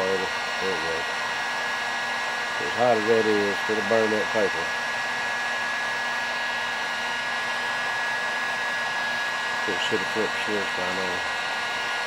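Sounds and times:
heat gun running: 0.0 - 12.0.

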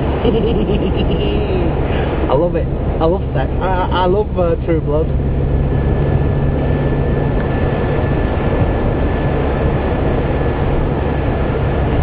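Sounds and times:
low engine hum: 0.0 - 12.0
road noise inside a car: 0.0 - 12.0.

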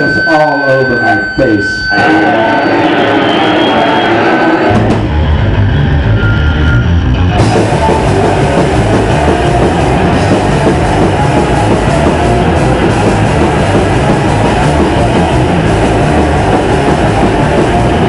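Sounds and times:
electric guitar: 1.9 - 18.0
bass and drum kit: 4.6 - 18.0.

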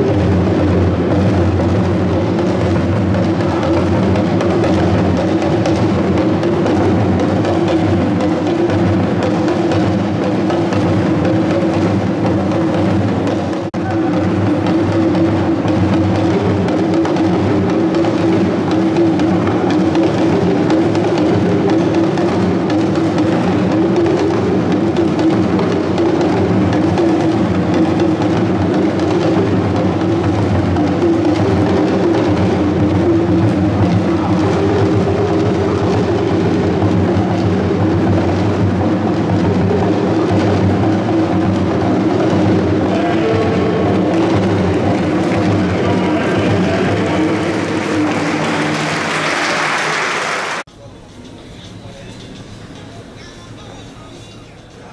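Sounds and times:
hand drum ensemble playing: 0.0 - 50.7.

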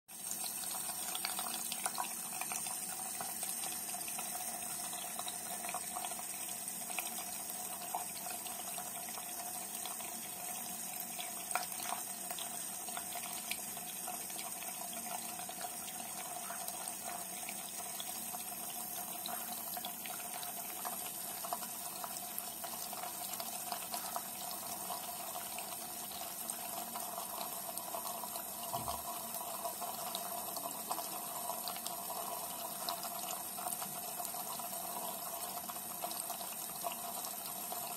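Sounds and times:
tap water running into sink: 0.1 - 37.9.

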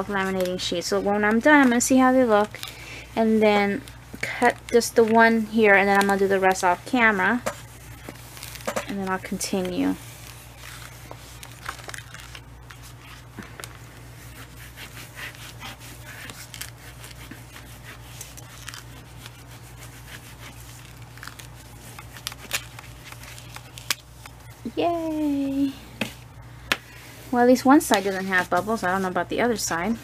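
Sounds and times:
backing paper crinkling: 0.0 - 25.7
low steady hum: 0.0 - 30.0.

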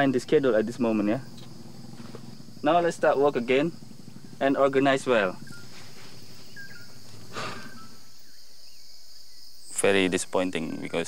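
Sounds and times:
high insect drone: 0.0 - 11.0
thin bird whistles: 5.4 - 8.1
soft rustle: 5.5 - 7.7.

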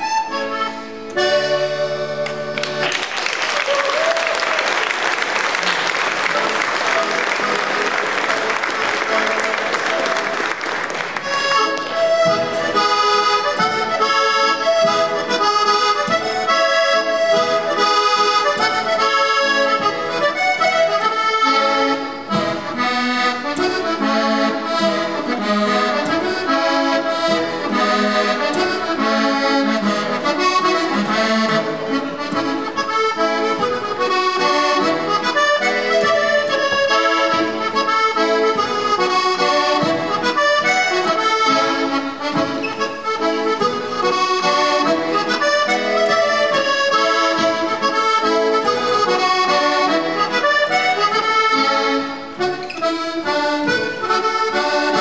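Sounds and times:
button accordion tune: 0.0 - 55.0
applause: 2.6 - 11.3.

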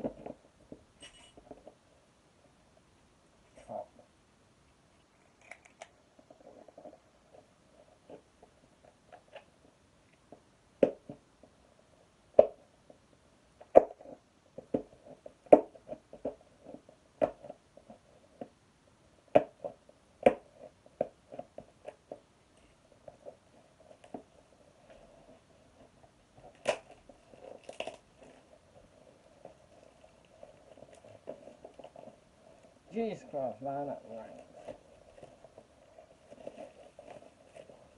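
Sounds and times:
packaging clicks and snaps: 5.3 - 6.0
packaging crinkling: 34.0 - 37.9.

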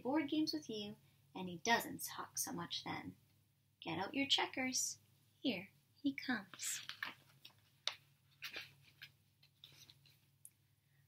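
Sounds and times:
paper pages rustling: 6.5 - 10.3.

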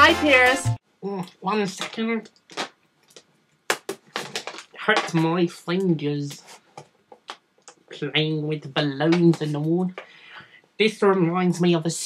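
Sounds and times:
balloon being knotted: 3.6 - 5.2.

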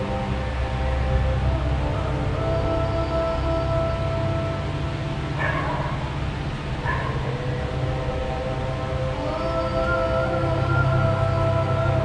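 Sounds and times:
slow ambient music: 0.0 - 12.0
dog barking: 5.4 - 6.1, 6.8 - 7.3.

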